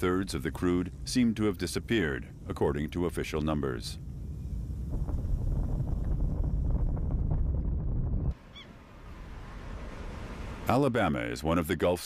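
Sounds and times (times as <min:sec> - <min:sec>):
low rumble of outdoor noise: 0:00.0 - 0:12.0.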